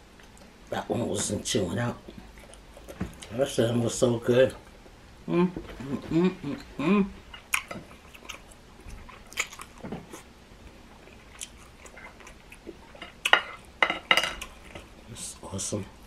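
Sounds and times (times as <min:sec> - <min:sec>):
person chewing food: 0:02.0 - 0:03.4, 0:06.4 - 0:15.0.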